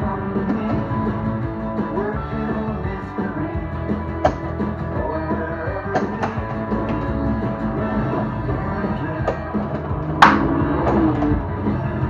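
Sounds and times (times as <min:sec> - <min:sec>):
rock-style pinball game music: 0:00.0 - 0:12.0.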